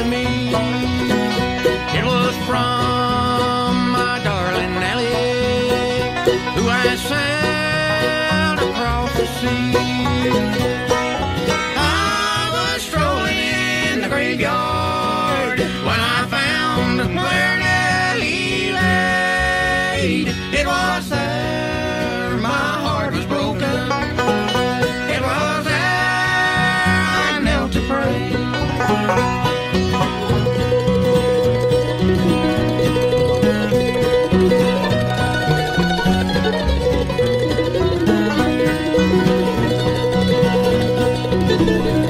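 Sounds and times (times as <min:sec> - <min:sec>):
person singing: 0:00.0 - 0:11.0, 0:11.7 - 0:28.6, 0:32.2 - 0:39.9
bluegrass band playing: 0:00.0 - 0:42.0.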